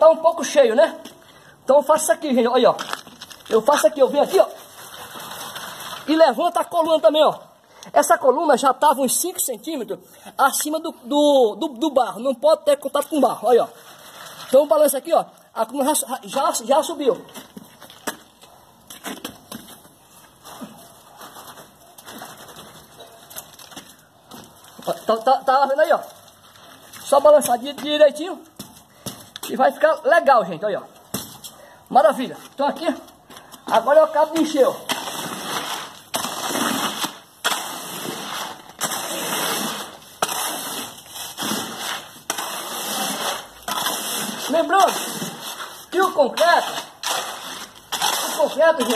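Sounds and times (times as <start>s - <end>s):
wet scraping in concrete: 2.7s - 7.1s, 13.1s - 29.6s, 32.2s - 48.9s.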